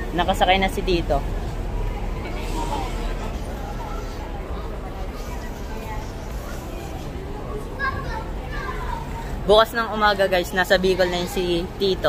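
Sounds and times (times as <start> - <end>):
crowd chatter: 0.0 - 12.0
steady noise hum: 0.0 - 12.0.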